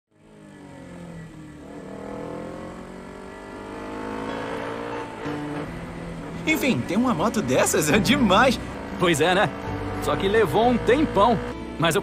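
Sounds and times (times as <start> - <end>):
motorcycle engine running: 0.1 - 12.0.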